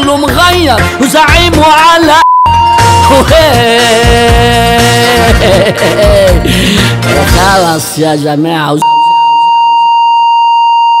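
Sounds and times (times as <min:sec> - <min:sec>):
censor bleep: 0:02.2 - 0:03.3, 0:08.8 - 0:11.0.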